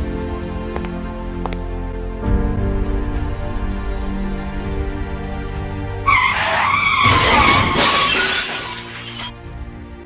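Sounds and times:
background music: 0.0 - 10.0
car tyres screeching: 6.0 - 9.3
glass shattering: 6.3 - 9.4.

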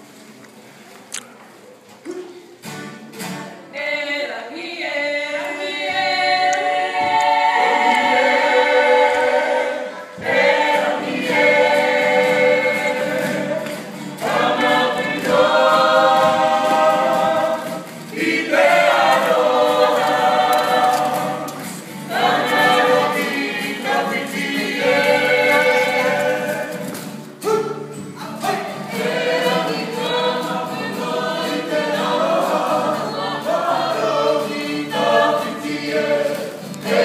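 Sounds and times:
strummed acoustic guitars: 2.2 - 3.8, 5.8 - 37.0
group singing: 3.7 - 37.0.

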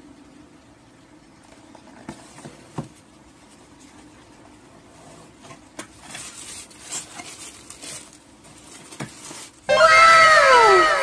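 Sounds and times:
tissue paper rustling: 6.0 - 9.7
echoing falling pitched tones: 9.7 - 11.0.

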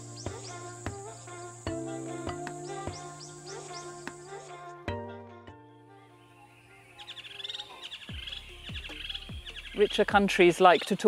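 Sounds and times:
birds chirping in trills: 0.0 - 4.8, 6.1 - 11.0
held music notes: 0.0 - 7.8.

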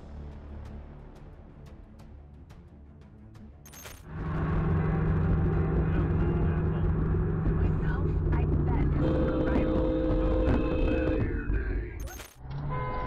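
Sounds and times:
car road and engine rumble: 4.0 - 13.0.

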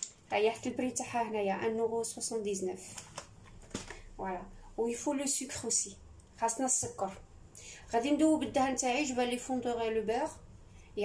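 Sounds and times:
woman speaking: 0.0 - 3.0, 4.2 - 11.0.

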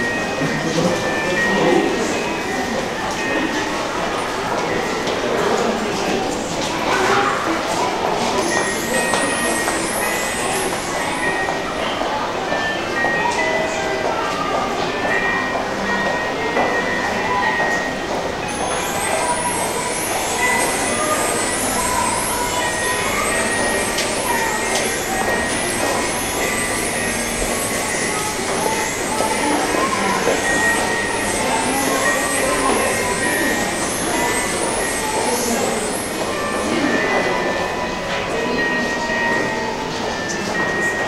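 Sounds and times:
murmur of crowd voices: 0.0 - 41.0.

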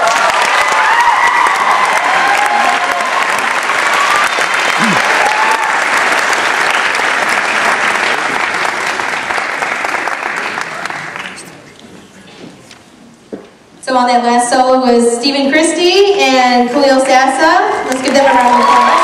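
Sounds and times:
shouted cheers: 0.0 - 6.1, 18.0 - 19.0
audience applauding: 0.0 - 11.9, 17.9 - 19.0.

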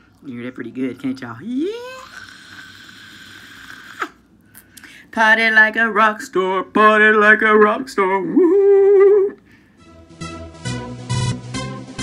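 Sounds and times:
vocal yelp through microphone: 1.4 - 4.2, 8.2 - 9.4.

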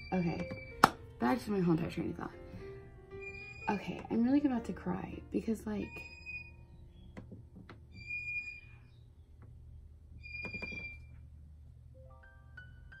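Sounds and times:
high whistle-like chirps: 7.9 - 9.0.

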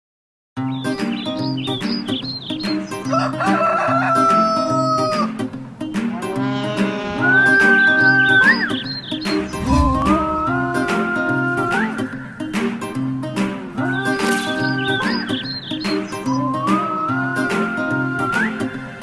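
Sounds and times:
rooster crowing: 3.0 - 5.3.

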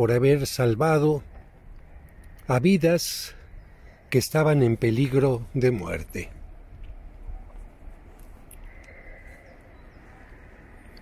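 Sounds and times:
faint clicks: 1.3 - 2.5, 6.8 - 11.0.

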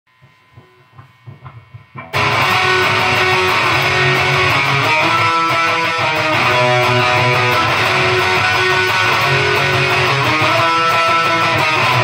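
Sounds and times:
guitar amplifier hum and buzz: 0.1 - 12.0
soft low thumps: 0.2 - 2.3.

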